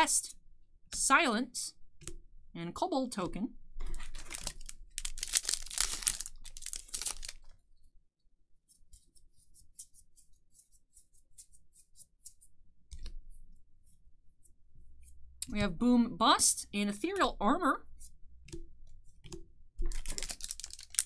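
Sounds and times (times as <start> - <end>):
foil wrapper tearing: 4.1 - 7.4, 19.9 - 21.0.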